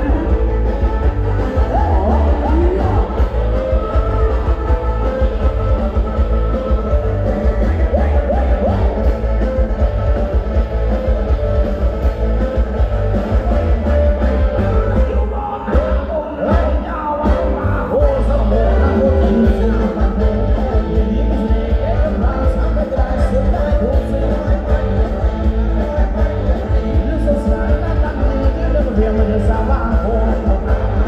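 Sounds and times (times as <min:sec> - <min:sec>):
person singing: 0:00.0 - 0:10.4, 0:13.3 - 0:31.0
live band playing dance music: 0:00.0 - 0:31.0.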